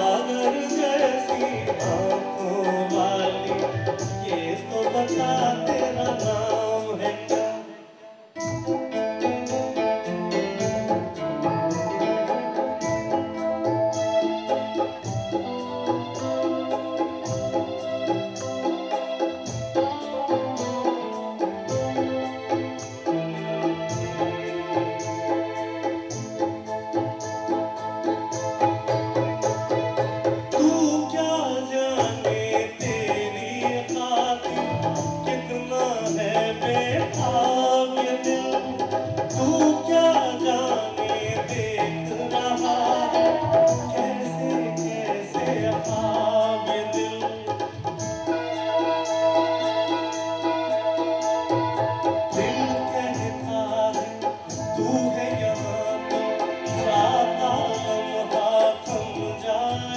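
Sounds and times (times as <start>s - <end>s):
guitar: 0.0s - 59.9s
keyboard organ-like melody: 0.0s - 59.9s
tabla: 0.0s - 59.9s.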